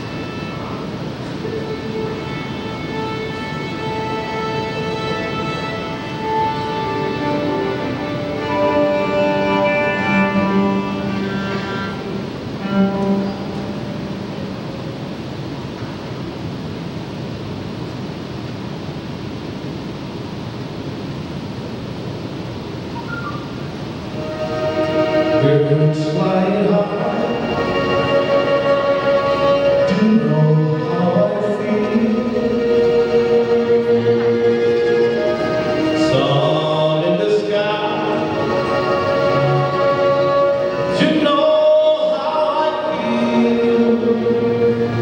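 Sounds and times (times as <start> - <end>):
big band playing held chords: 0.0 - 15.5, 23.0 - 45.0
steady rushing noise: 0.0 - 45.0.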